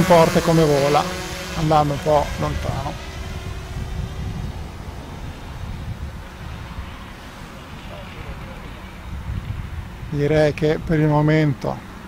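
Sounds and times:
drone propeller hum: 0.0s - 12.0s
wind rumble on microphone: 0.0s - 12.0s.

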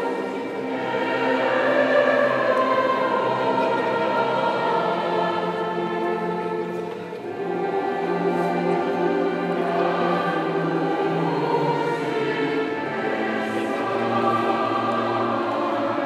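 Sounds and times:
choir singing slowly: 0.0s - 16.0s.

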